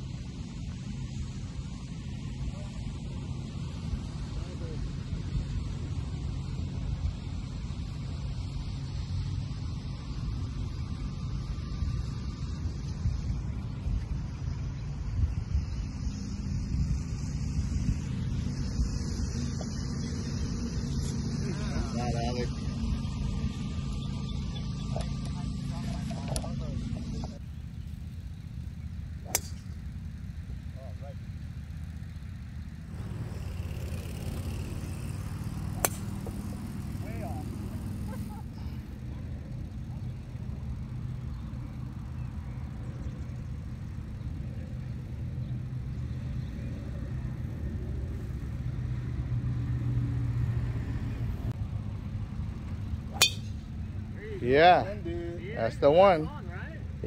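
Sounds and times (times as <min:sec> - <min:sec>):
steady low rumble: 0:00.0 - 0:49.4
golf club striking ball: 0:29.2 - 0:30.0, 0:32.9 - 0:38.3, 0:53.1 - 0:53.9.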